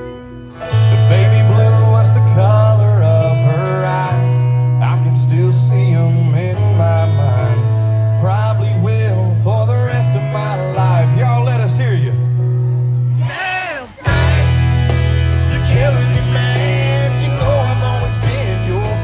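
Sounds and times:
guitar: 0.0s - 19.0s
heavy bass line: 0.0s - 19.0s
live country band: 0.0s - 19.0s
person singing: 0.7s - 12.0s, 13.2s - 19.0s.

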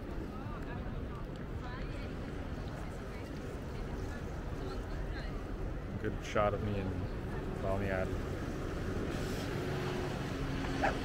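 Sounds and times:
wind: 0.0s - 11.0s
dog barking: 10.8s - 11.0s.

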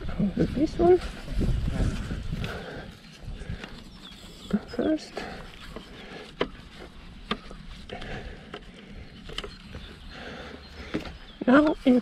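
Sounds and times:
rumble of handling: 0.0s - 12.0s.

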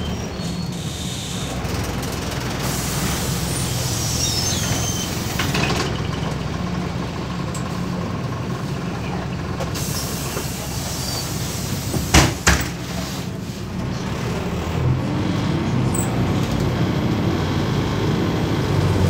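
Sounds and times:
bus diesel engine droning: 0.0s - 19.0s
compressed air hiss: 2.6s - 4.6s, 9.8s - 13.7s.

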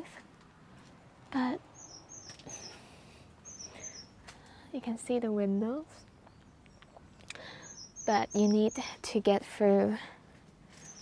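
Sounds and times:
faint bird chirps: 1.7s - 4.2s, 6.0s - 9.0s, 10.8s - 11.0s.

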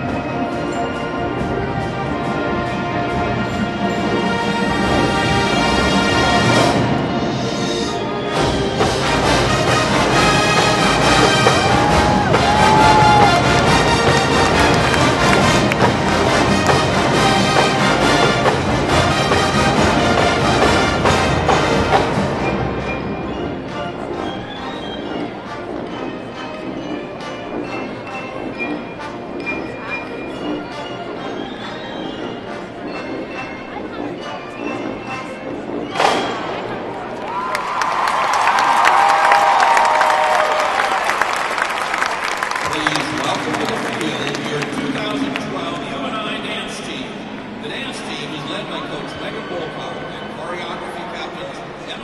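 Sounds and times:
marching band playing: 0.0s - 52.0s.

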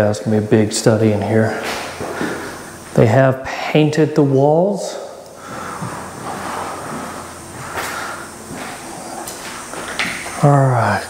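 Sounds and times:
footsteps on concrete: 1.5s - 2.6s, 5.4s - 10.4s.

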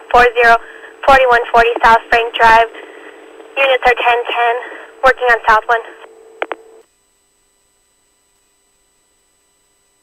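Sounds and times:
steady hum: 0.0s - 10.0s
radio clicks: 3.2s - 4.5s, 5.9s - 6.8s.

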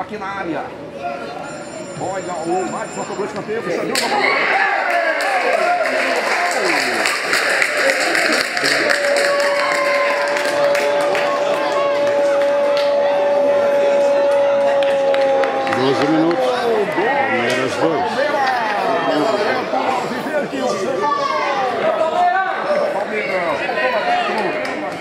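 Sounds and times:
crowd noise: 0.0s - 25.0s
indistinct voices talking: 0.7s - 25.0s
people clapping: 4.8s - 19.0s, 24.2s - 25.0s
people shouting: 7.9s - 17.4s
horn long steady note: 9.4s - 16.4s.

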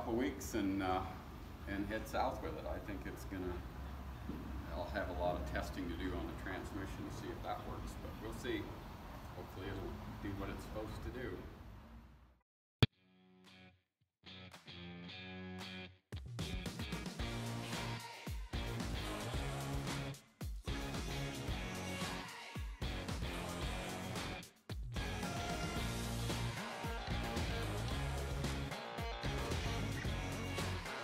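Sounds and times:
rock band with electric guitar: 25.0s - 31.0s.

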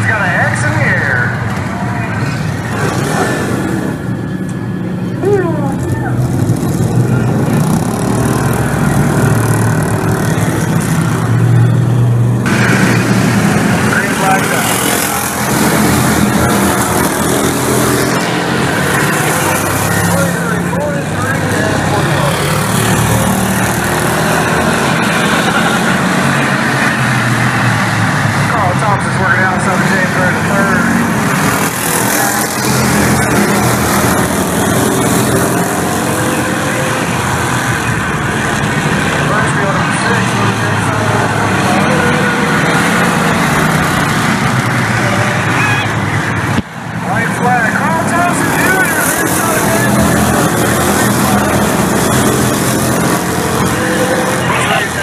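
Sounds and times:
voices: 0.0s - 11.9s, 13.3s - 55.0s
race car engines: 0.0s - 55.0s.

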